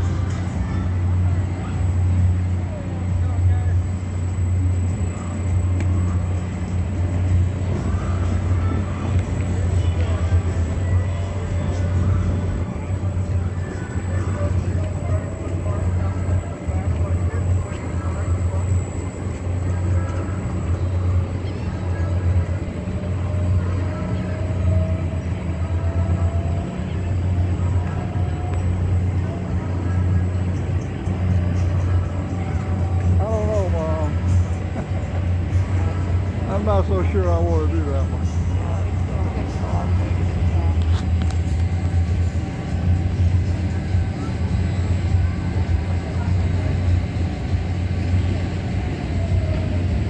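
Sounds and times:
background voices: 0:00.0 - 0:37.2
swing ride mechanical hum: 0:00.0 - 0:50.0.

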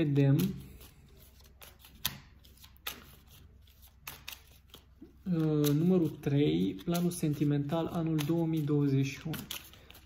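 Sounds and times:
cards snapping: 0:00.0 - 0:10.0
faint card rustling: 0:00.0 - 0:10.0.

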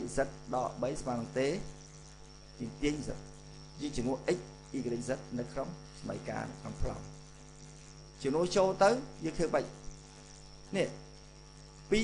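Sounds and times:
man speaking: 0:00.0 - 0:01.7, 0:02.6 - 0:03.2, 0:03.8 - 0:07.1, 0:08.2 - 0:09.7, 0:10.7 - 0:11.0
steady electrical hum: 0:00.0 - 0:12.0.

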